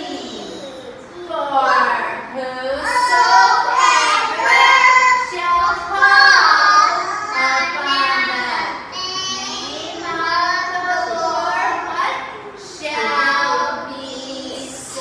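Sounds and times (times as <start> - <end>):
young children singing: 2.7 - 15.0.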